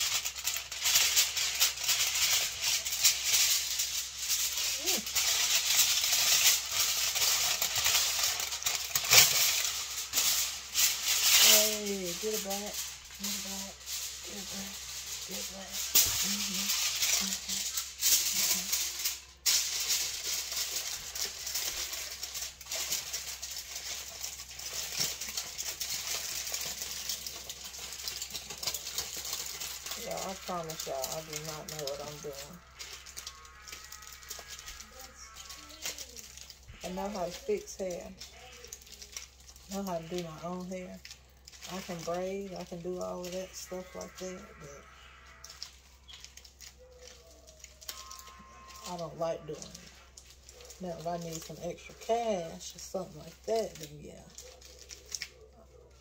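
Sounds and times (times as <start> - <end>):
aluminium foil crinkling: 0.0 - 56.0.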